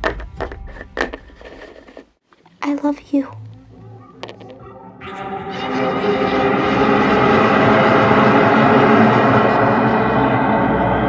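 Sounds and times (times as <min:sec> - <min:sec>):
dense soundtrack drone: 0:03.3 - 0:11.0
rushing noise: 0:05.6 - 0:11.0.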